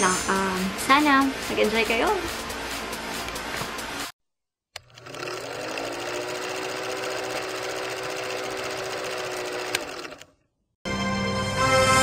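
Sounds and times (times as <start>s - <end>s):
film projector clatter: 4.8s - 10.3s.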